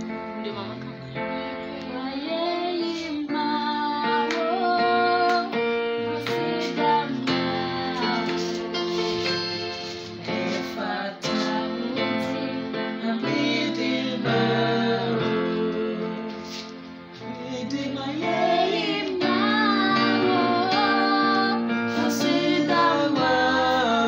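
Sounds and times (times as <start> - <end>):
electronic keyboard chords: 0.0 - 24.0.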